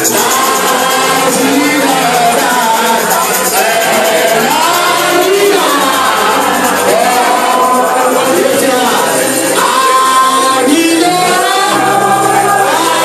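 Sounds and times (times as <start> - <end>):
group of voices singing: 0.0 - 13.0.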